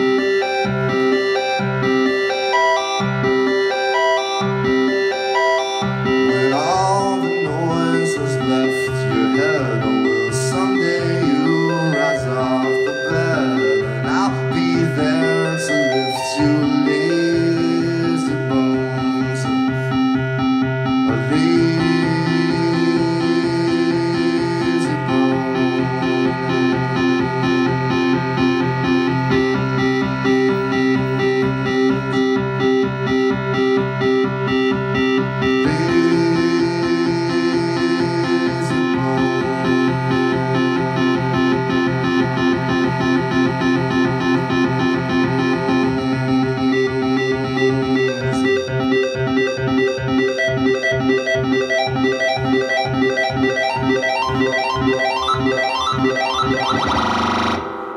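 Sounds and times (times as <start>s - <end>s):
synthesizer rhythmic pattern: 0.0s - 57.9s
rising synth sweep: 34.6s - 57.9s.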